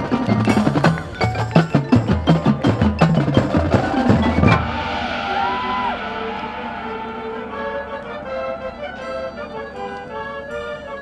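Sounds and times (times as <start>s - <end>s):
marching band sustained chords: 0.0s - 11.0s
pitched glide: 3.4s - 10.0s.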